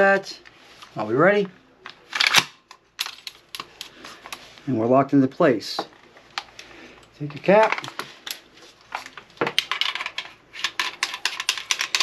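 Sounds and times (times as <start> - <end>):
gun parts clicking and rattling: 1.8 - 4.4, 7.3 - 12.0.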